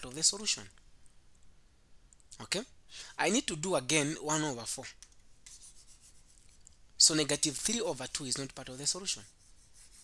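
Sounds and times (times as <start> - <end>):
pen scratching on tablet: 5.5 - 6.6, 8.6 - 10.0.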